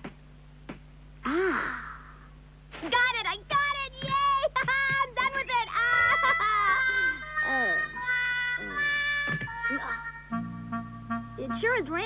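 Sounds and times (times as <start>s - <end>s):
child singing: 3.5s - 10.3s
background music: 6.9s - 12.0s.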